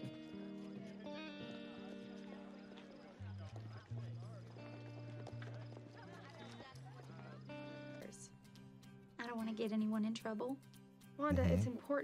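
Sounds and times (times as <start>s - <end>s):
faint soft music: 0.0s - 12.0s.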